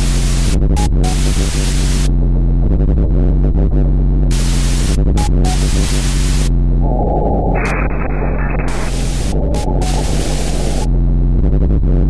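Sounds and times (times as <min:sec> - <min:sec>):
loud static blasts: 0:05.6 - 0:11.1
low buzzing drone: 0:05.8 - 0:11.6.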